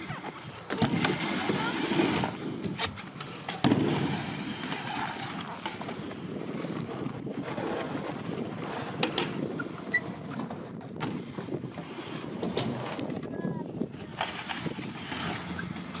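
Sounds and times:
bike tyres rolling on ramp: 0:00.0 - 0:16.0.

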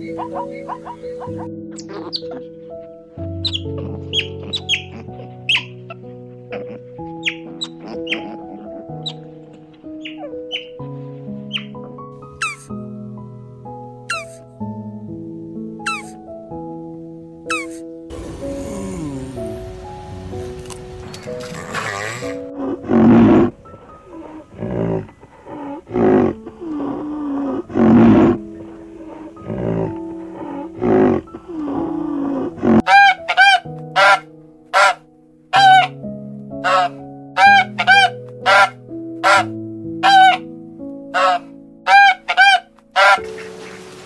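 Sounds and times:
soft piano music: 0:00.0 - 0:44.0
rough drawn-out animal calls: 0:03.4 - 0:09.3, 0:21.2 - 0:34.2, 0:35.6 - 0:35.9, 0:36.6 - 0:40.4, 0:41.2 - 0:43.2
short nasal honking calls: 0:32.9 - 0:34.2, 0:34.8 - 0:35.0, 0:36.6 - 0:40.4, 0:41.2 - 0:43.2.

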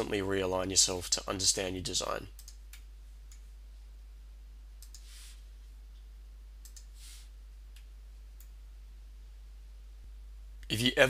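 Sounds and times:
steady low hum: 0:00.0 - 0:11.0
computer mouse buttons clicking: 0:04.8 - 0:05.1, 0:06.6 - 0:06.9.

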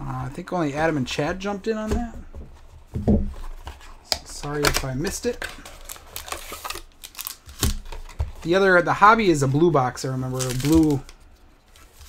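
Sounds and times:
crinkling and rustling wrapper: 0:03.3 - 0:12.0
cardboard box being torn open: 0:05.6 - 0:07.9.

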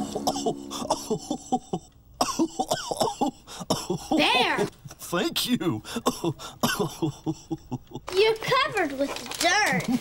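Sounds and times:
person coughing and chuckling: 0:00.0 - 0:04.4, 0:05.9 - 0:08.1.

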